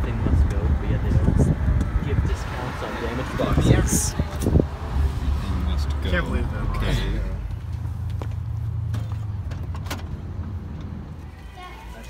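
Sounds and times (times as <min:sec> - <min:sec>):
car rumbling: 0:00.0 - 0:12.0.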